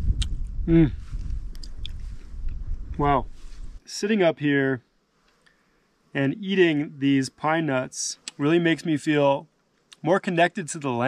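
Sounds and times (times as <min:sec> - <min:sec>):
low rumble: 0:00.0 - 0:03.8
faint small clicks: 0:01.5 - 0:02.6.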